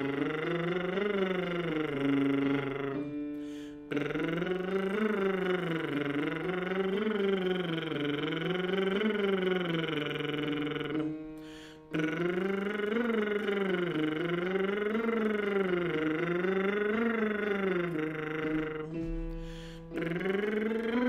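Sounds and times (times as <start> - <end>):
held accompaniment notes: 0.0 - 21.0.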